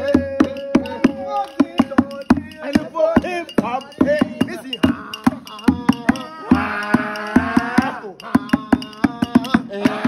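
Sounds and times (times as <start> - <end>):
steady drum beat: 0.0 - 10.0.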